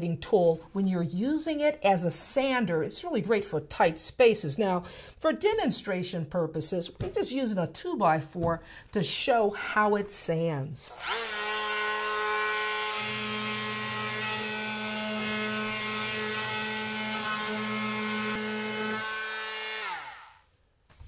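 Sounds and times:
multi-tool motor buzzing: 0:10.9 - 0:20.5
sanding pad buzzing on wood: 0:11.0 - 0:20.4.

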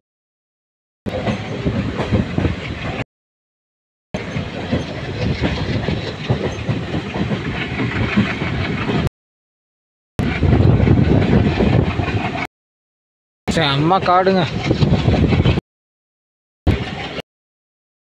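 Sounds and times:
train rumbling and rattling on rails: 0:01.1 - 0:03.0, 0:04.2 - 0:09.1, 0:10.2 - 0:12.5, 0:13.5 - 0:15.6, 0:16.7 - 0:17.2.

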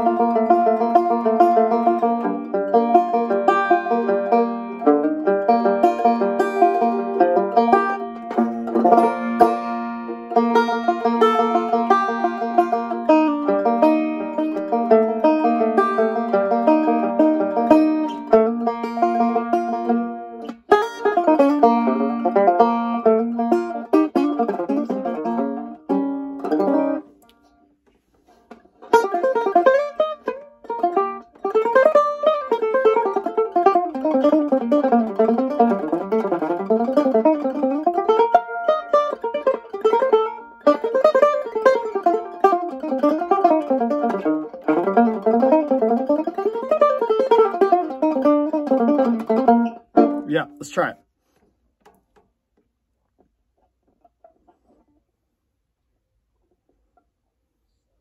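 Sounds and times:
guitar-banjo flatpicking: 0:00.0 - 0:27.2, 0:28.2 - 0:50.9.

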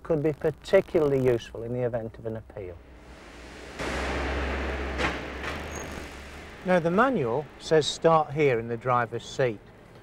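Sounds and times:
car engine rumbling at low revs: 0:02.6 - 0:10.0.

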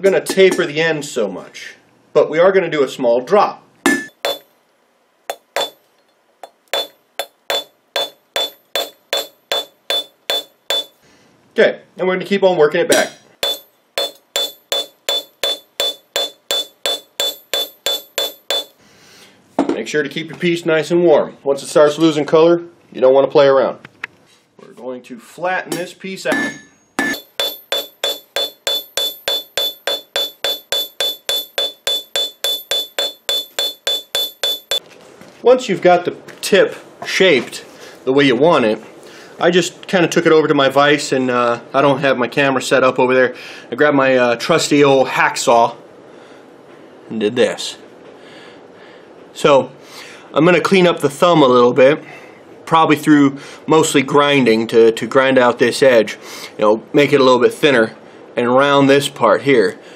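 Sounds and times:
anvil ringing: 0:03.9 - 0:04.5, 0:05.3 - 0:05.8, 0:06.4 - 0:11.0, 0:12.9 - 0:18.8, 0:25.8 - 0:34.8
hammer striking steel on anvil: 0:03.9 - 0:04.5, 0:05.3 - 0:11.0, 0:12.9 - 0:18.8, 0:25.7 - 0:34.8.

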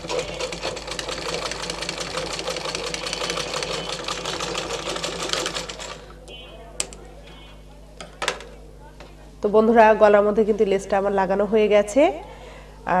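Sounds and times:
sewing machine stitching: 0:00.0 - 0:06.0.

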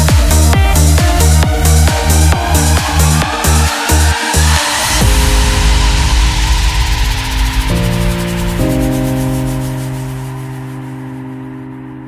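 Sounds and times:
synth pad chord: 0:00.0 - 0:12.0
white noise sweep: 0:00.8 - 0:12.0.

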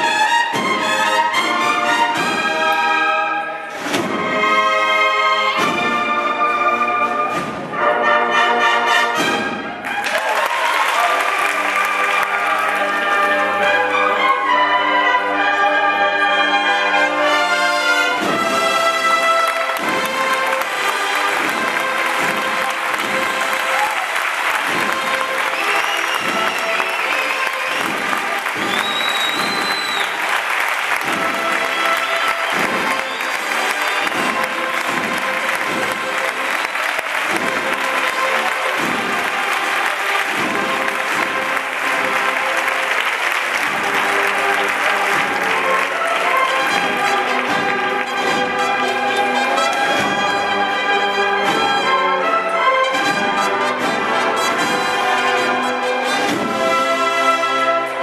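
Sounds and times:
cornet and drum band playing: 0:00.0 - 0:58.0
audience applauding: 0:09.7 - 0:14.2, 0:17.6 - 0:52.0
high whistles: 0:25.4 - 0:30.4, 0:31.4 - 0:33.8.

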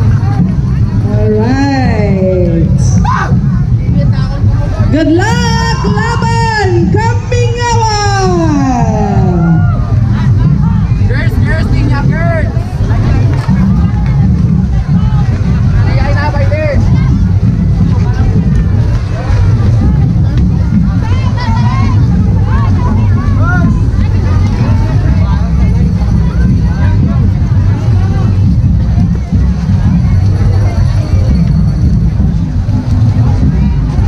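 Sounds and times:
continuous low rumble: 0:00.0 - 0:34.0
heavy parade drumming: 0:00.0 - 0:34.0
voices calling and shouting: 0:00.0 - 0:34.0.

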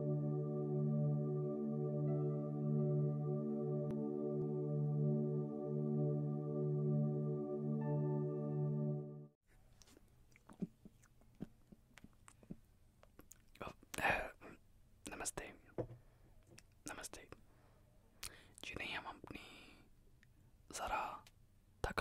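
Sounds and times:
man whispering: 0:13.2 - 0:15.8, 0:16.8 - 0:17.5, 0:18.2 - 0:19.8, 0:20.7 - 0:22.0.

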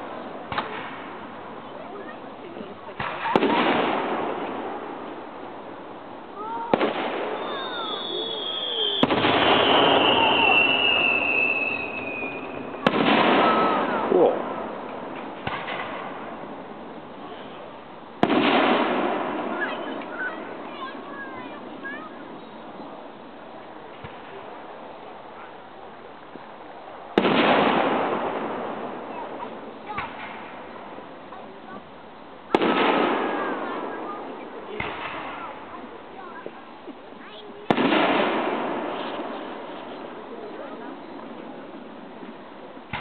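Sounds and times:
firework shell bang: 0:12.8 - 0:16.4, 0:18.2 - 0:20.2
fireworks shell bursting with bang: 0:14.8 - 0:16.3.

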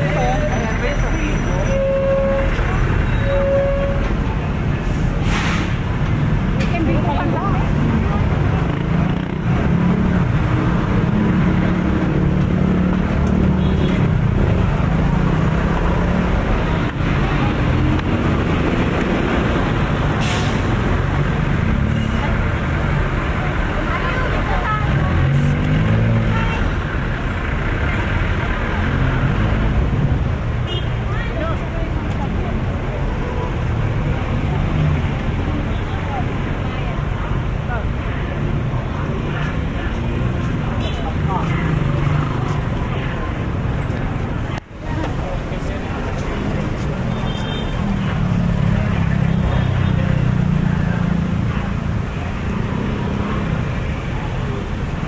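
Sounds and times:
passersby talking: 0:00.0 - 0:55.0
vehicle engines running: 0:00.0 - 0:55.0.

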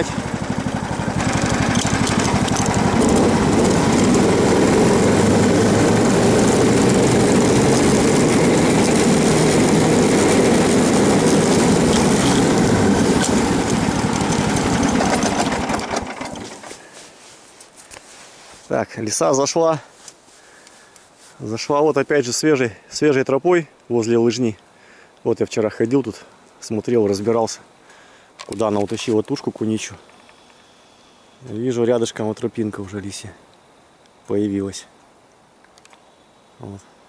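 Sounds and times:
snowmobile engine running: 0:00.0 - 0:16.7.

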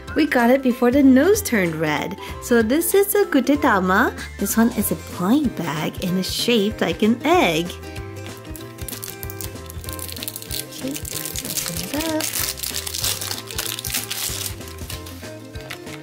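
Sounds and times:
background music: 0:00.0 - 0:16.0
plastic wrap crinkling: 0:08.3 - 0:16.0.

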